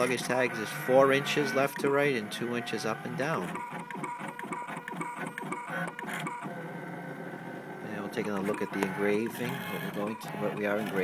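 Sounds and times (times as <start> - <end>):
engraving machine motors whirring: 0.0 - 11.0.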